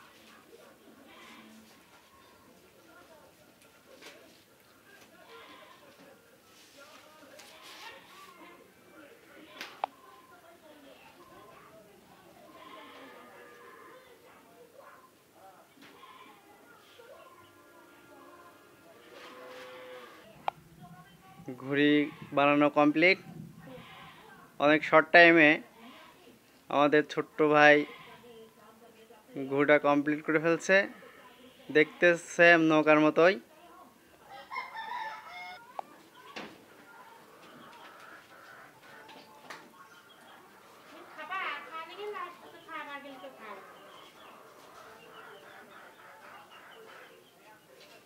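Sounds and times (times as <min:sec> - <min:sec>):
faint animal call: 0:00.9 - 0:02.4, 0:12.4 - 0:14.2, 0:34.2 - 0:47.6
faint bleating animal call: 0:00.9 - 0:02.4, 0:05.2 - 0:06.0, 0:12.4 - 0:14.2, 0:15.8 - 0:22.6, 0:23.6 - 0:24.6, 0:25.7 - 0:26.4, 0:27.6 - 0:28.4, 0:30.5 - 0:32.3.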